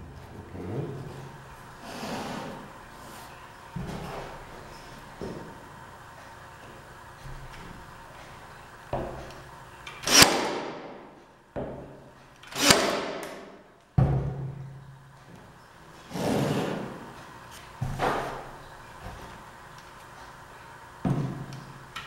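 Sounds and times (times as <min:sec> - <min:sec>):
pin nailer firing: 0:10.0 - 0:11.1, 0:12.5 - 0:13.6.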